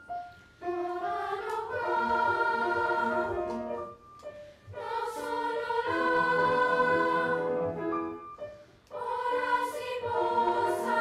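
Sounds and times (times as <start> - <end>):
children's choir singing: 0.6 - 4.0, 4.7 - 8.2, 8.9 - 11.0.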